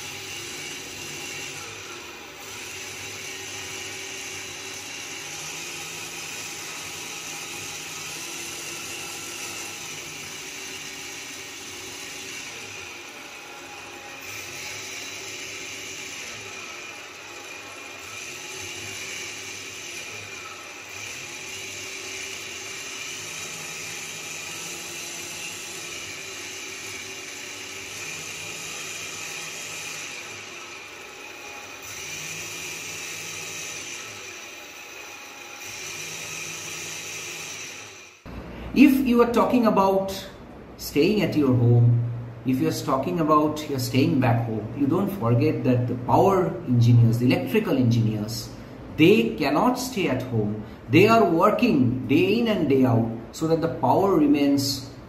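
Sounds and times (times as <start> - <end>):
electric blower running: 0.0 - 55.0.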